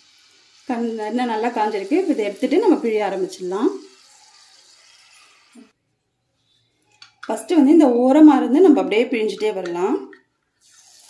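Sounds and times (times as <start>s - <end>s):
oil sizzling in a pan: 0.0s - 5.8s, 10.6s - 11.0s.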